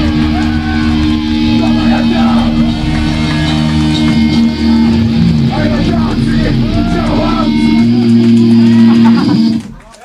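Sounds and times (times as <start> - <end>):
electric guitar and bass chord: 0.0 - 10.0
faint voices: 0.1 - 10.0.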